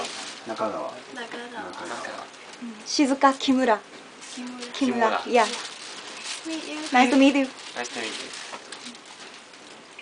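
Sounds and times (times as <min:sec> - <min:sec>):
person speaking: 0:04.4 - 0:05.6.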